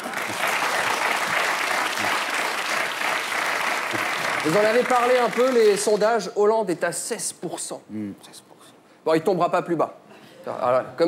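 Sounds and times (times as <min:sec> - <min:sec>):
audience clapping: 0:00.0 - 0:06.2.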